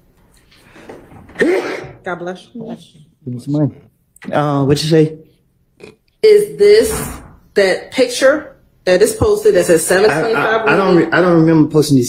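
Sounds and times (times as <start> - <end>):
person sneezing: 1.4 - 2.0.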